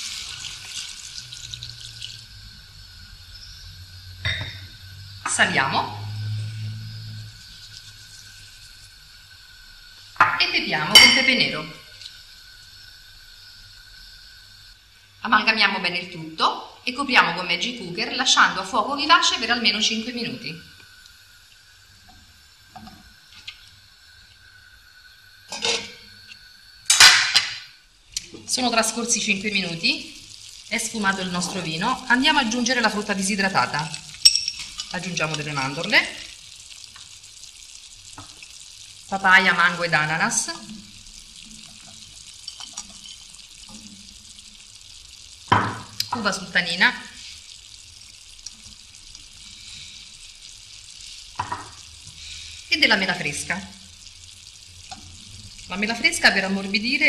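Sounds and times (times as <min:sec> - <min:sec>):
chicken sizzling in frying pan: 0:00.0 - 0:15.1, 0:18.2 - 0:57.0
metal lid clattering on pan: 0:25.5 - 0:25.9
utensil knocks in frying pan: 0:26.9 - 0:27.7, 0:45.5 - 0:46.0, 0:51.4 - 0:51.8.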